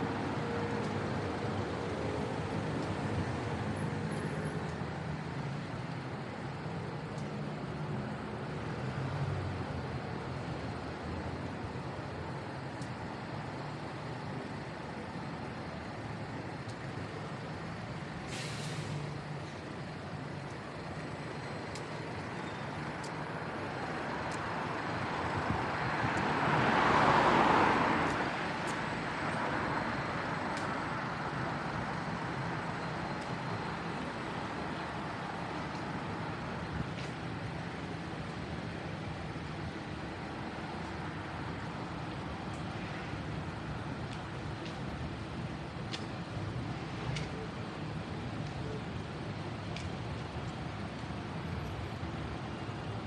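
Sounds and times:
city road traffic: 0:00.0 - 0:53.0
short high hiss: 0:18.3 - 0:19.0.

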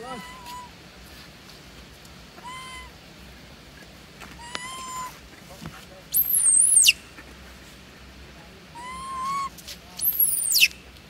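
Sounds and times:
macaque high-pitched squeal: 0:00.0 - 0:00.8, 0:02.4 - 0:03.0, 0:04.4 - 0:05.2, 0:06.1 - 0:07.0, 0:08.7 - 0:10.7
macaques cooing: 0:00.0 - 0:00.8, 0:02.3 - 0:03.0, 0:04.4 - 0:05.2, 0:08.7 - 0:10.7.

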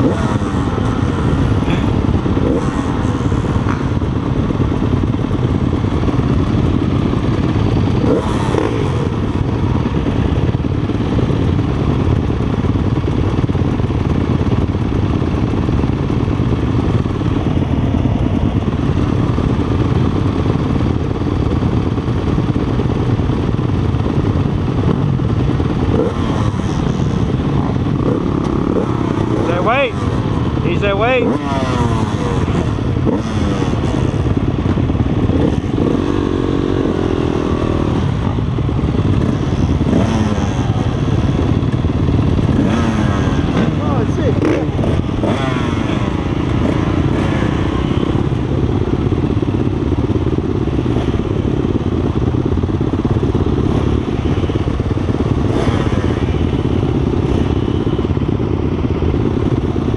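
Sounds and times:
engine revving: 0:00.0 - 0:04.3, 0:07.1 - 0:10.2, 0:24.9 - 0:49.6, 0:52.1 - 0:58.2
dirt bikes idling: 0:00.0 - 0:59.9.

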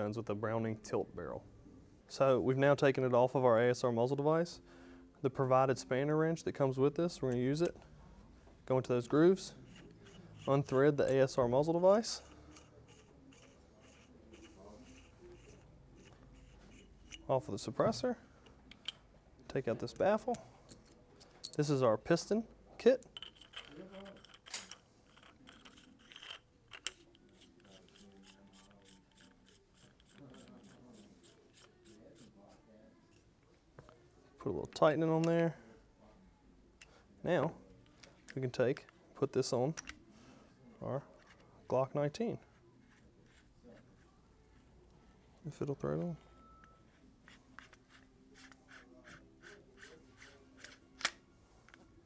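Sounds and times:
metal threads scraping: 0:09.5 - 0:11.3, 0:11.9 - 0:17.4, 0:23.2 - 0:32.5.

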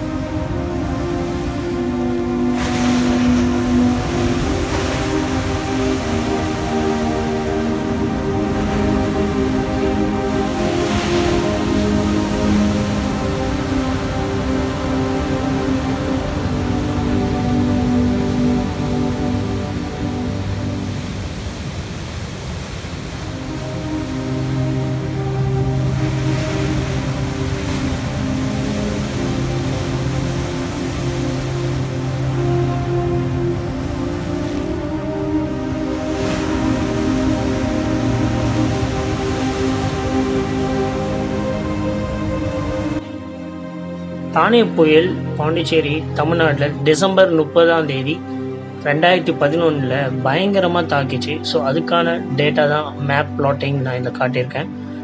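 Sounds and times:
heavy surf: 0:00.0 - 0:43.2
music of long held notes: 0:00.0 - 0:55.0.

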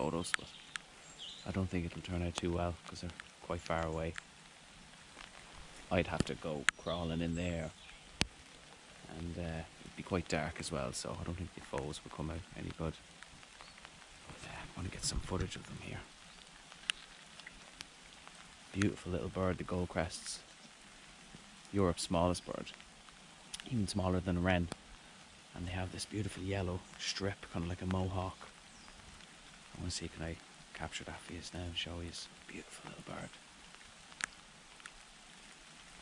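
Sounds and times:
light rain hissing: 0:00.0 - 0:36.0.

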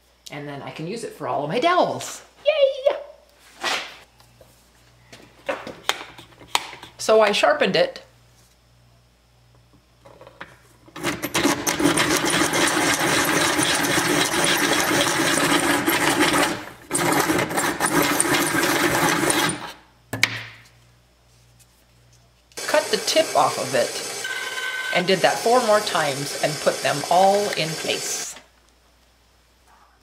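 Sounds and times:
pencil sharpener grinding wood: 0:05.9 - 0:07.0, 0:11.0 - 0:19.8, 0:22.6 - 0:28.4.

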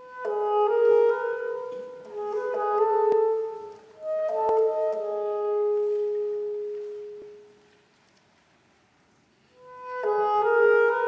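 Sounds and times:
saxophone note: 0:00.0 - 0:07.6, 0:09.6 - 0:11.0.

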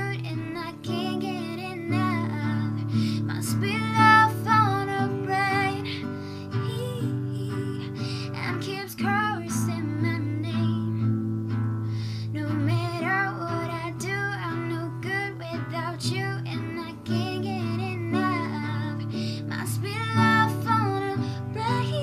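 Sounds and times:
woman singing slow melody: 0:00.0 - 0:11.2, 0:12.1 - 0:22.0
strummed acoustic guitar: 0:00.0 - 0:22.0.

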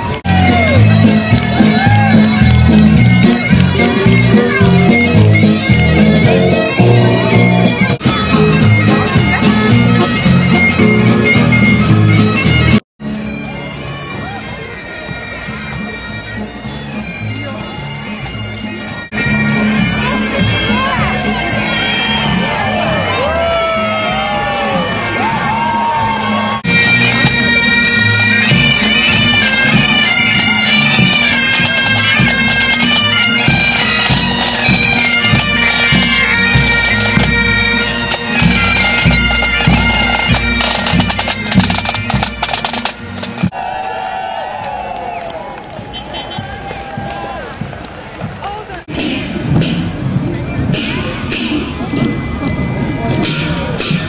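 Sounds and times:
drum beats: 0:00.0 - 0:12.8, 0:15.0 - 0:43.6, 0:45.8 - 0:54.0
bagpipes playing over drone: 0:00.3 - 0:25.4, 0:26.3 - 0:43.6.

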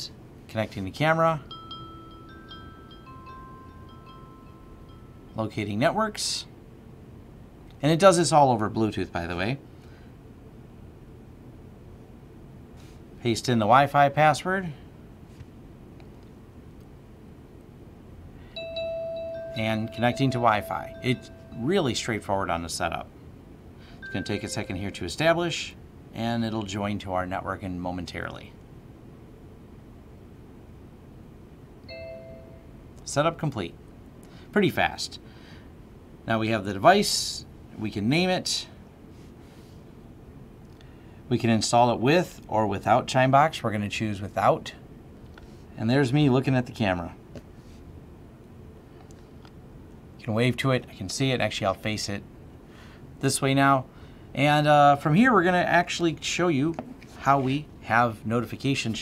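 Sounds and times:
faint room noise: 0:00.0 - 0:59.0
faint electronic chime: 0:01.5 - 0:05.5, 0:18.6 - 0:22.4, 0:24.0 - 0:25.1, 0:31.9 - 0:32.8
short electronic chime: 0:18.6 - 0:22.2, 0:24.0 - 0:25.0.

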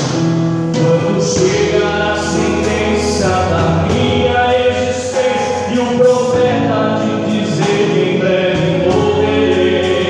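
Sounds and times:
man singing hymn into microphone: 0:00.7 - 0:10.0
voices singing along: 0:00.8 - 0:10.0.

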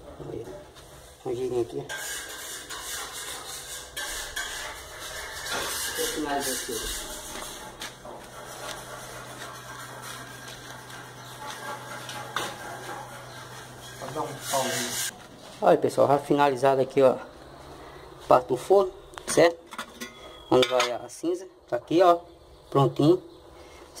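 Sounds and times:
steady low hum: 0:00.0 - 0:20.5.

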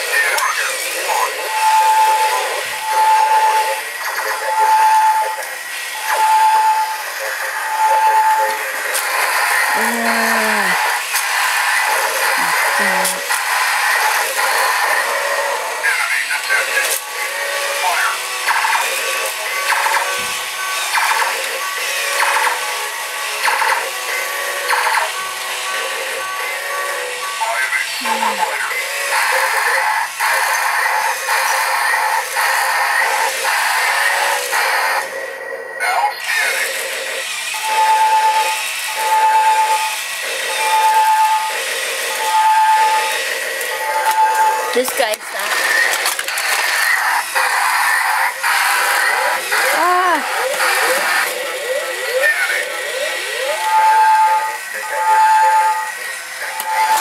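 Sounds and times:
toy electronic music: 0:00.2 - 0:17.2, 0:23.9 - 0:31.0, 0:37.5 - 0:57.0
voice-like sound effects: 0:09.7 - 0:11.0, 0:12.2 - 0:13.4, 0:27.8 - 0:28.8, 0:49.2 - 0:53.6.

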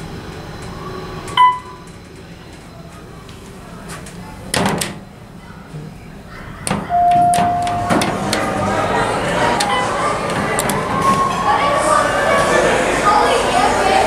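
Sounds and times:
elevator car clunking: 0:00.0 - 0:03.1, 0:03.9 - 0:13.7
voices: 0:00.7 - 0:14.0
elevator doors sliding open: 0:03.9 - 0:14.0.

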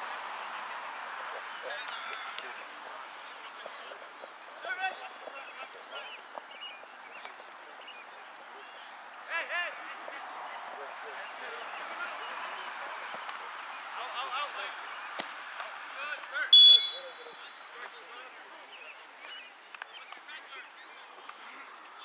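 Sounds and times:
players shouting: 0:08.7 - 0:19.2
referee's whistle: 0:16.5 - 0:17.3.

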